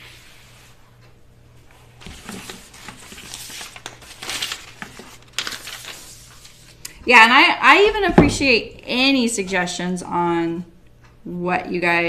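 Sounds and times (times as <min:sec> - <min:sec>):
paper rustling and crinkling: 0:01.7 - 0:06.8.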